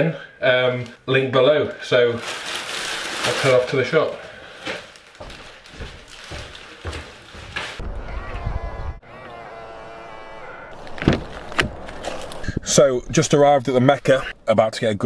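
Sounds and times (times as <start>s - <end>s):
car door opening with clunks: 10.8s - 12.1s.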